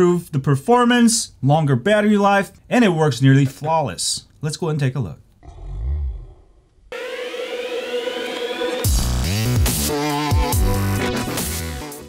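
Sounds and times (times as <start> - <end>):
siren-like synth riser: 6.9 - 9.0.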